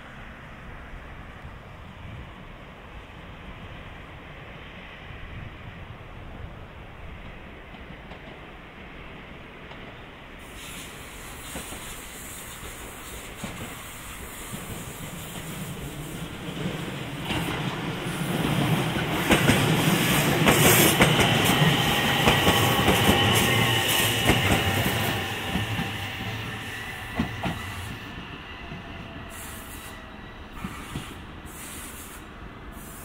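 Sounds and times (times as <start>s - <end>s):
train rumble: 0.0s - 33.0s.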